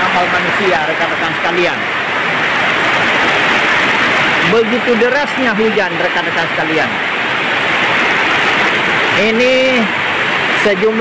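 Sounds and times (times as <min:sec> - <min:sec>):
torrential rain: 0:00.0 - 0:11.0.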